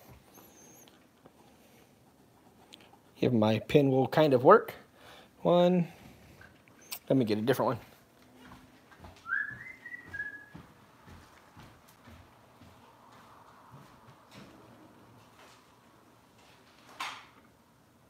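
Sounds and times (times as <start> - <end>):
high whistling tone: 9.2 - 10.7.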